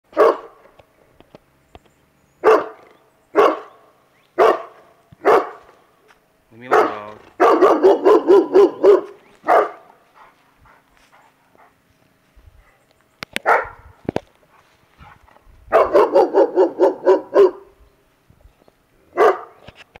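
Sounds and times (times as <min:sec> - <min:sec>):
large dog barking: 0:00.1 - 0:00.6, 0:02.4 - 0:05.8, 0:06.6 - 0:11.8, 0:13.4 - 0:13.9, 0:15.0 - 0:17.8, 0:19.1 - 0:19.6.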